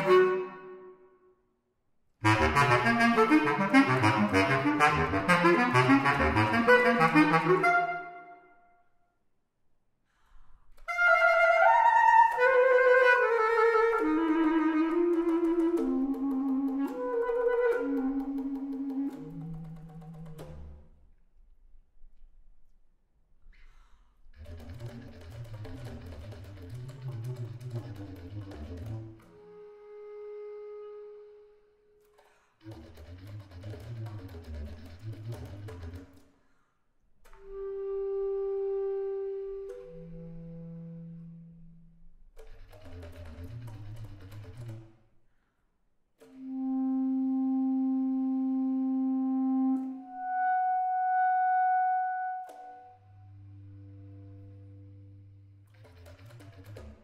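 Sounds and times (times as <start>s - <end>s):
solo bass clarinet: 0.0s - 1.2s, 2.2s - 8.5s, 10.8s - 20.8s, 24.4s - 32.0s, 32.7s - 36.1s, 37.3s - 42.1s, 46.2s - 57.0s.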